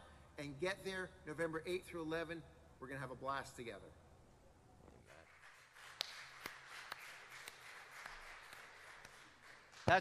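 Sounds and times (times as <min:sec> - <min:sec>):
congregation applauding: 0:05.1 - 0:10.0.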